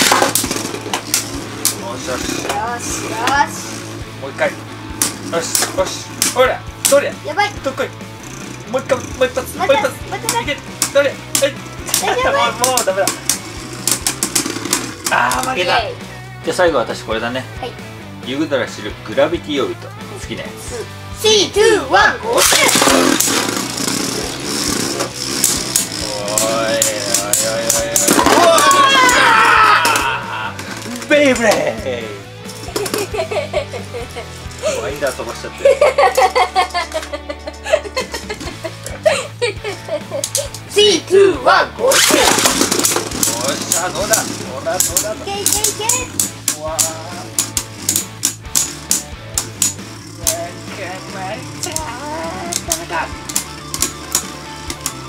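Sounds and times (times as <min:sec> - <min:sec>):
spinning tops clicking: 0:00.0 - 0:02.6, 0:10.2 - 0:15.6, 0:22.4 - 0:30.0, 0:40.1 - 0:40.7, 0:41.9 - 0:55.0
spinning tops whirring: 0:00.0 - 0:15.8, 0:22.3 - 0:31.8, 0:41.8 - 0:55.0.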